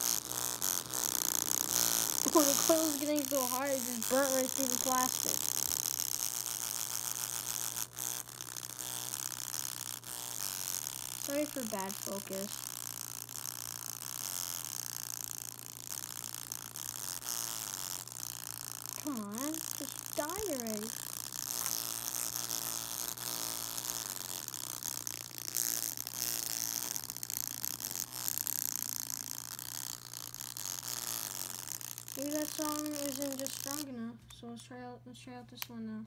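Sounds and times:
harsh buzzy speaker distortion: 0.0 - 34.2
steady low hum: 0.0 - 36.0.

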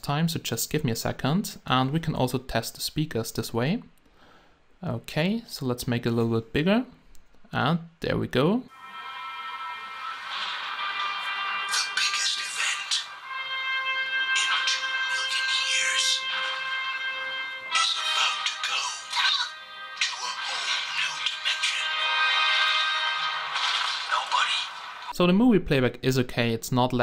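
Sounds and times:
soundtrack music on small speakers: 8.7 - 25.1
voices: 14.2 - 16.6, 17.7 - 22.1.

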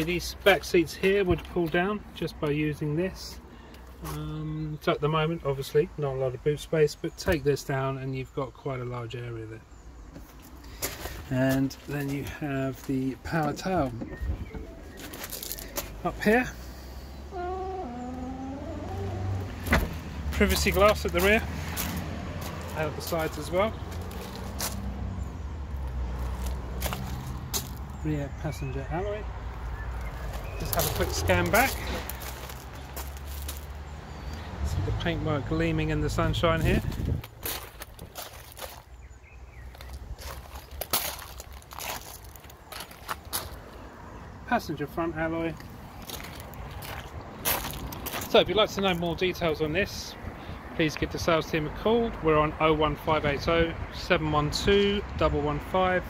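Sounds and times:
footsteps crunching on gravel: 10.2 - 16.0, 18.8 - 24.9, 25.8 - 28.0, 29.5 - 33.8, 36.6 - 43.7, 45.6 - 49.2.

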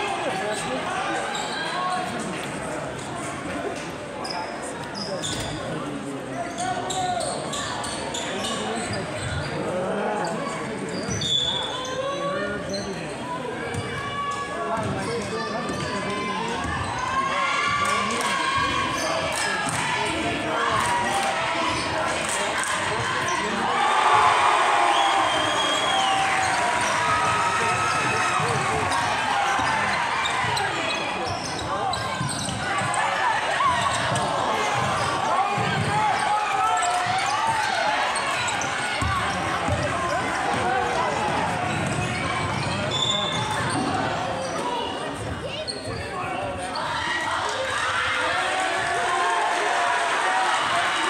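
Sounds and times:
spectators chattering and calling: 0.0 - 51.0
sneaker squeaks: 0.5 - 2.1, 4.2 - 5.8, 6.4 - 14.1, 14.8 - 17.0, 25.1 - 47.1
basketball bouncing on court: 38.5 - 43.9.

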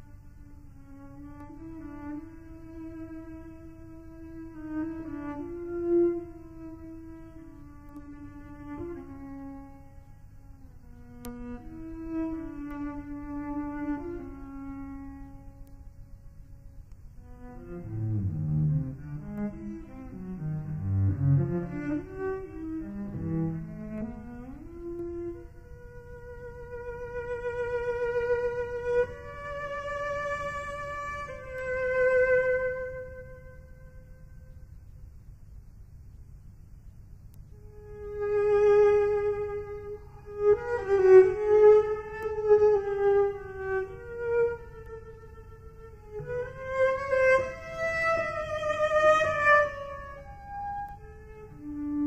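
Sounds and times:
cello playing sustained notes: 0.0 - 34.7, 37.5 - 52.0.

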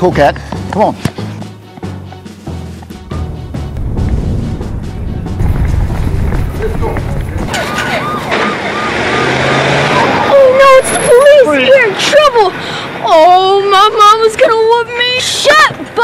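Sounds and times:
low rumble: 2.9 - 7.6
police car siren yelping: 6.2 - 11.3.

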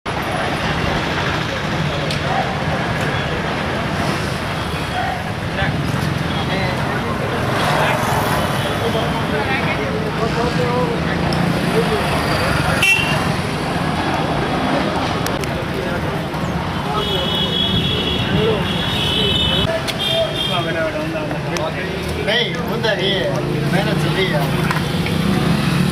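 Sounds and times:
vehicles going by: 0.1 - 25.9
voices of people nearby: 0.1 - 25.9.

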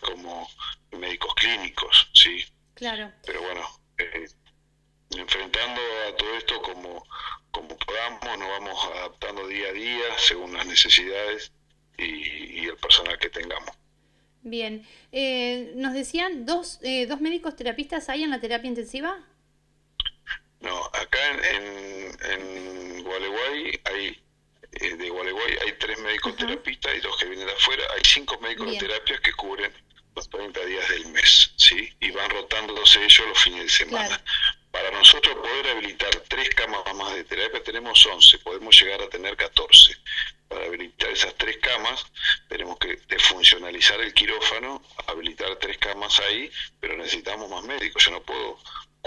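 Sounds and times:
person talking over telephone: 0.0 - 4.4, 5.1 - 13.8, 20.0 - 49.0.

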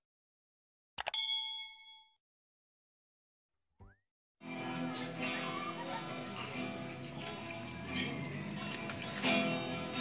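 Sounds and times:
bell ding: 1.0 - 2.2.

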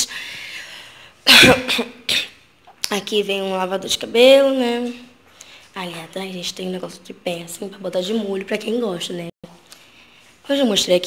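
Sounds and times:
woman coughing: 1.2 - 2.4.

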